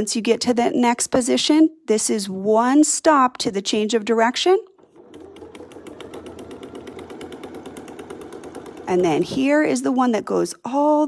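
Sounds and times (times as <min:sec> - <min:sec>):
sewing machine motor hum: 0:04.7 - 0:09.8
sewing needle ticking: 0:04.8 - 0:09.7.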